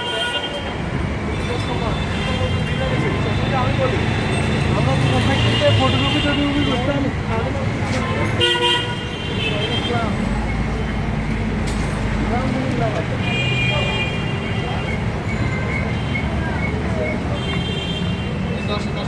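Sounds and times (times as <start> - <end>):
people's voices: 0.0 - 19.0
steady traffic noise: 0.0 - 19.0
vehicle horns honking: 1.4 - 7.1, 8.1 - 10.2, 13.2 - 16.4, 17.2 - 18.5.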